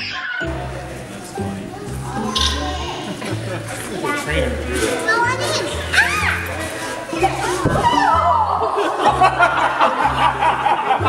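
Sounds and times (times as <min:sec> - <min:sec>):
children's excited voices: 0:01.9 - 0:09.2.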